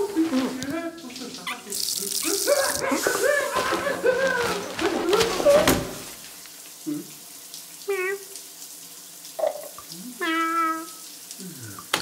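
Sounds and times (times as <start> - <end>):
water running into a bath: 0.0 - 12.0
person calling out: 4.0 - 5.9, 6.8 - 7.2, 7.8 - 8.4, 9.4 - 11.9.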